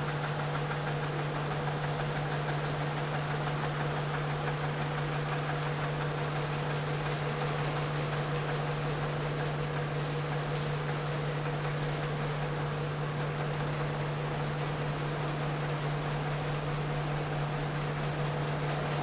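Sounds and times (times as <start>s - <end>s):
shake table machine hum: 0.0s - 19.0s.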